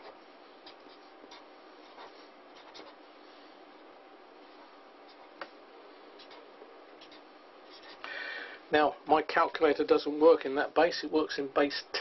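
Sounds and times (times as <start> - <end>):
marker pen on paper: 0.0 - 3.2, 4.5 - 5.6, 6.2 - 8.0.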